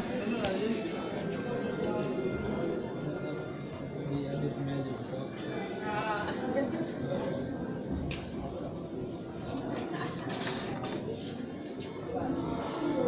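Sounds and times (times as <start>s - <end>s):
indistinct background voices: 0.0s - 13.0s.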